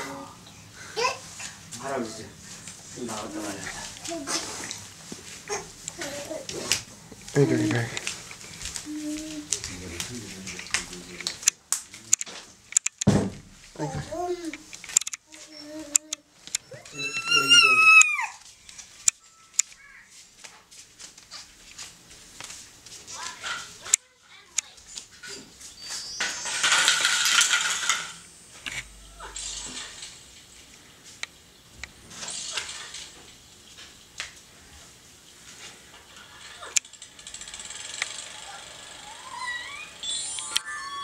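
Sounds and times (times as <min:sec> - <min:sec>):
baby babbling: 0:05.5 - 0:06.6, 0:15.3 - 0:18.4
toddler wavering vocal sound: 0:05.5 - 0:06.7, 0:13.8 - 0:14.5, 0:15.3 - 0:18.4
toddler squealing: 0:16.6 - 0:18.4, 0:38.4 - 0:41.0.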